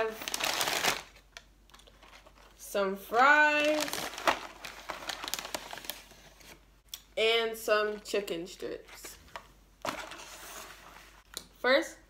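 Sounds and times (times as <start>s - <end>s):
paper bag rustling and crinkling: 0.0s - 1.2s, 3.5s - 6.6s.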